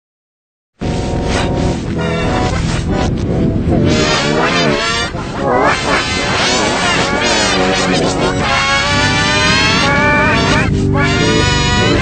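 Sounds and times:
reversed chord-like music: 0.8s - 12.0s
garbled reversed voices: 1.9s - 12.0s.

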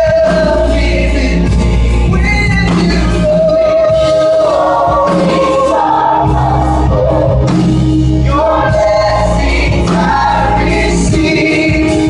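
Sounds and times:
gospel choir singing: 0.0s - 12.0s
keyboards: 0.0s - 12.0s
steady bass line: 0.0s - 12.0s.

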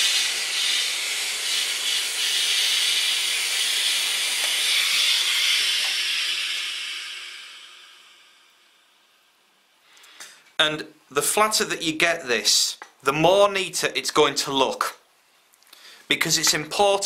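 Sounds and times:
steam iron hissing: 0.0s - 8.9s.

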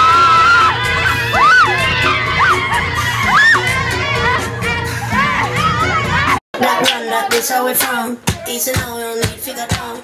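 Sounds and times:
group shouting and cheering: 0.0s - 8.8s
loud music with heavy bass: 0.0s - 10.0s.

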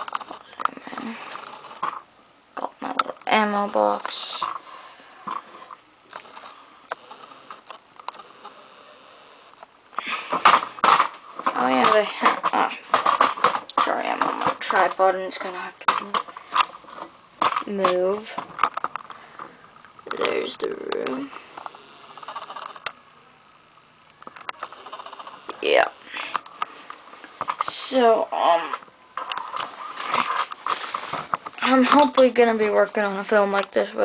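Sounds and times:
boy saying uh: 2.6s - 4.5s, 20.1s - 21.3s, 27.6s - 28.8s
knocking and rustling: 10.0s - 19.5s.

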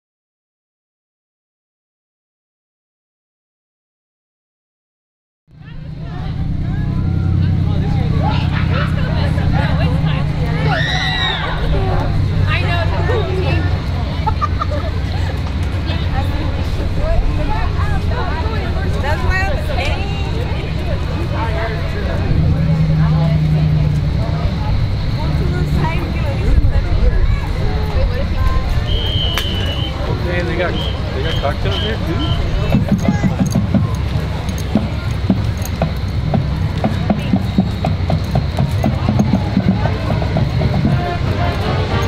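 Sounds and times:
spectators chattering: 5.5s - 42.0s
fire engine idling: 5.6s - 42.0s.

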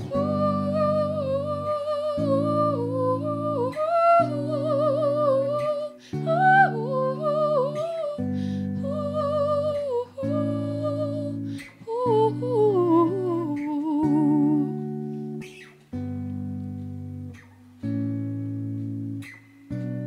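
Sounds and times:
woman singing wordless melody: 0.0s - 15.6s
electric guitar chords: 0.0s - 20.0s.

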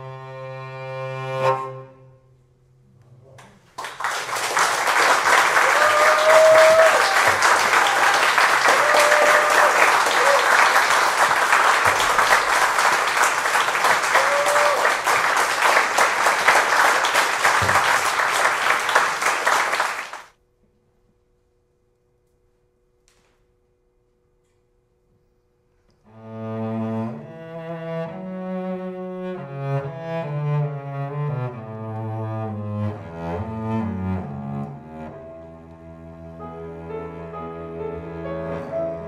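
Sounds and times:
audience applause: 3.8s - 20.3s.

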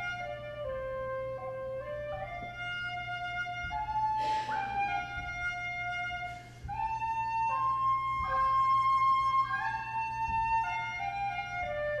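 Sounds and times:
flute-like woodwind melody: 0.0s - 12.0s.

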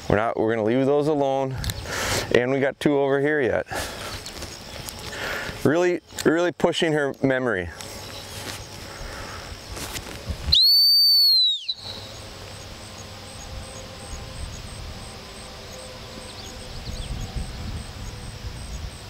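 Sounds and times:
dog whistle blast: 10.5s - 12.1s.

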